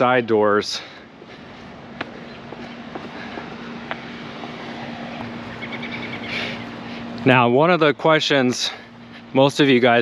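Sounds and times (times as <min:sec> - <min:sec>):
steady low hum: 0:00.0 - 0:10.0
high chirps: 0:05.0 - 0:06.8.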